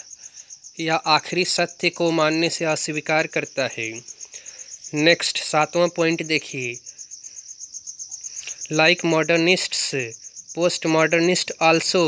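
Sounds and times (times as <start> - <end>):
man speaking: 0.8 - 4.0, 4.9 - 6.8, 8.5 - 12.0.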